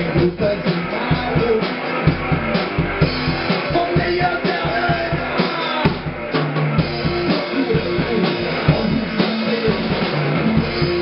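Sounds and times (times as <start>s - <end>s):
amplified electric guitar: 0.0s - 11.0s
drum kit steady beat: 0.0s - 11.0s.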